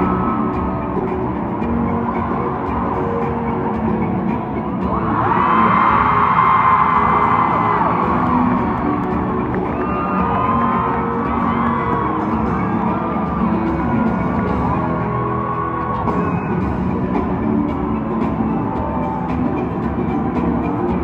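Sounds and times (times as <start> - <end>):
crowd cheering and screaming: 0.0 - 21.0
music over loudspeakers: 0.0 - 21.0.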